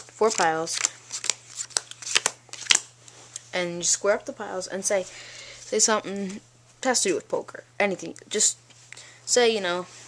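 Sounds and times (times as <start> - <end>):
playing cards snapping: 0.3 - 2.9.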